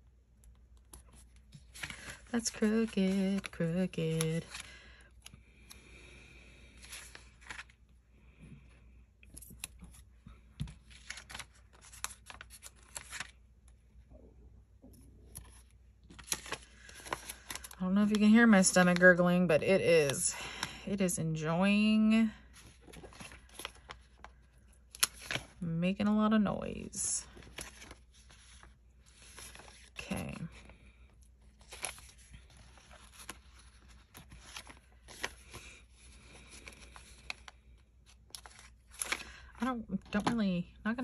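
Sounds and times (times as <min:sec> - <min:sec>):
paper rustling: 0:00.8 - 0:04.8, 0:06.7 - 0:07.8, 0:10.6 - 0:13.4, 0:15.3 - 0:19.1, 0:22.5 - 0:25.6, 0:27.2 - 0:40.4.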